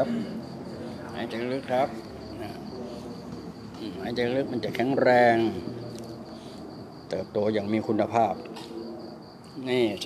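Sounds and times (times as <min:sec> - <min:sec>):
insect trilling: 0:00.0 - 0:10.0.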